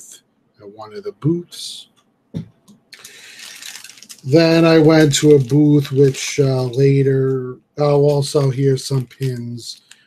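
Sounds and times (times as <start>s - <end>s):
objects knocking on table: 2.3s - 2.8s
rustling: 3.0s - 7.4s.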